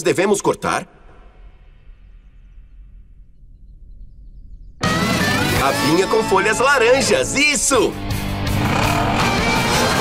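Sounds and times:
steady low rumble: 0.6s - 4.8s.

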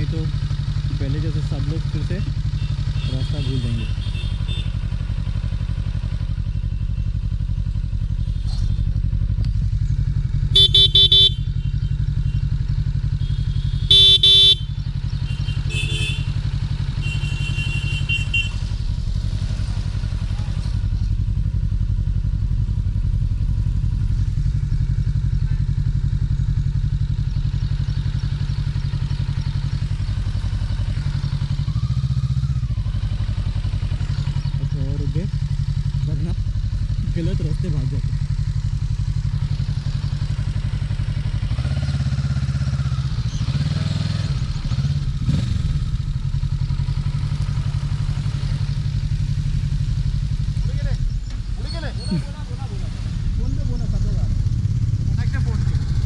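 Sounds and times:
motorcycle engine idling: 0.0s - 56.0s
horn honking: 2.3s - 5.2s, 10.4s - 19.4s
faint horn beeps: 10.5s - 18.7s.

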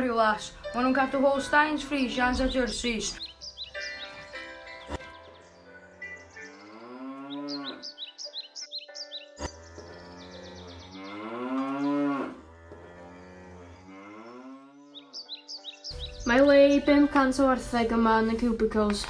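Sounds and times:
quiet background music: 0.0s - 19.0s
cow mooing: 5.9s - 8.0s, 9.4s - 15.2s.

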